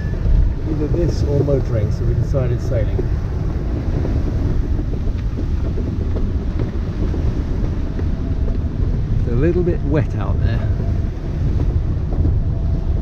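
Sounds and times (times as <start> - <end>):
sea breaking along a hull: 0.0 - 13.0
wind on microphone: 0.0 - 13.0.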